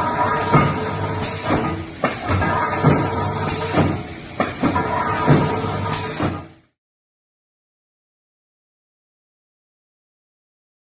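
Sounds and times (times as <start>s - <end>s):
punch press motor and flywheel hum: 0.0s - 6.6s.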